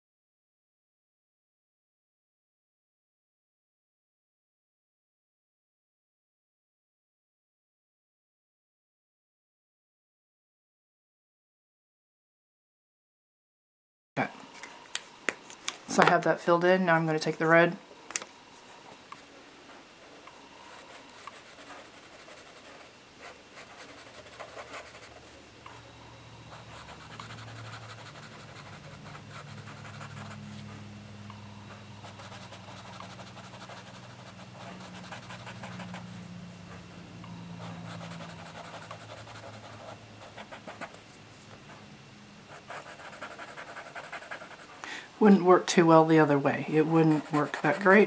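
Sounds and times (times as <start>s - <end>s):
low steady hum: 14.2s - 48.0s
marker scratching on paper: 20.7s - 25.3s, 26.5s - 30.6s, 32.0s - 36.1s, 37.6s - 41.0s, 42.5s - 44.7s, 47.0s - 48.0s.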